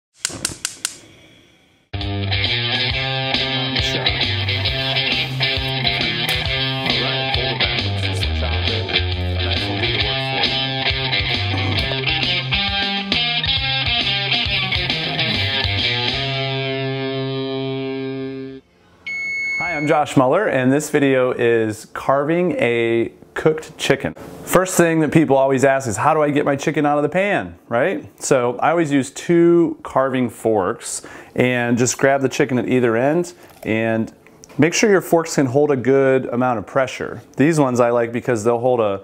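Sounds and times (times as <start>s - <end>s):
guitar music: 2.0s - 18.6s
man speaking: 3.5s - 12.0s, 19.6s - 39.0s
high steady tone: 18.4s - 20.2s.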